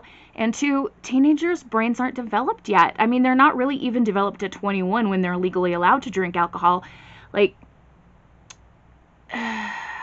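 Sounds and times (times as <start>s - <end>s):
woman sighing: 9.3s - 10.0s.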